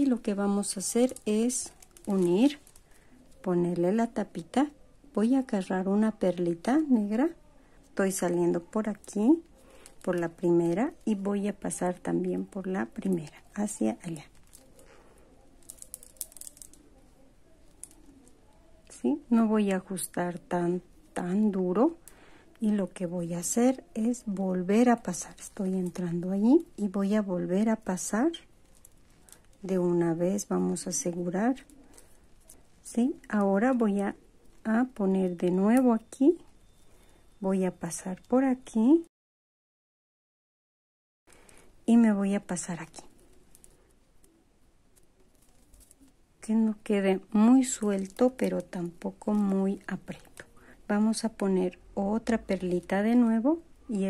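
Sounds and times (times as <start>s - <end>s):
plastic beads clicking together: 0.0s - 4.6s, 6.7s - 19.0s, 19.9s - 37.2s, 42.7s - 53.9s.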